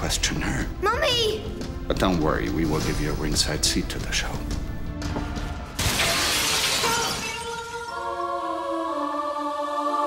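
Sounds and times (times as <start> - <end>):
glass shards falling: 5.8 - 7.7
glass window shattering: 5.8 - 7.7.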